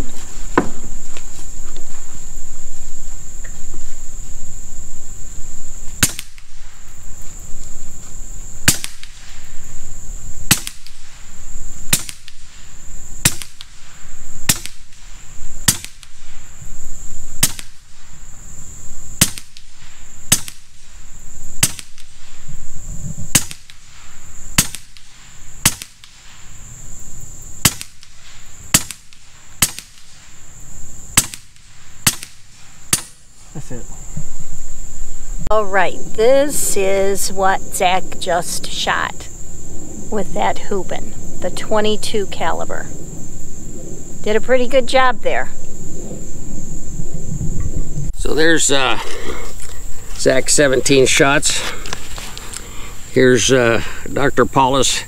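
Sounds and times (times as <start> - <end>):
air rifle shots: 6.0 - 6.7, 8.6 - 9.5, 10.4 - 11.2, 11.9 - 16.4, 17.4 - 18.1, 19.2 - 21.0, 21.6 - 22.4, 23.3 - 26.4, 27.6 - 30.2, 31.2 - 33.3.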